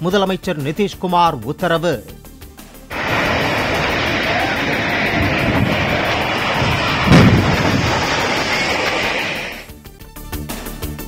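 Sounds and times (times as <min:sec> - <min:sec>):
bridge collapsing with crashing: 0:02.9 - 0:09.7
deep crash: 0:02.9 - 0:09.7.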